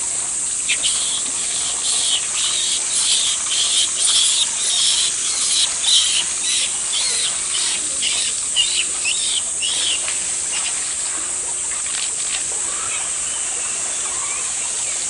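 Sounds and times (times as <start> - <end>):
steady hiss: 0.0 - 15.0
baby monkey high-pitched calls: 0.7 - 10.0.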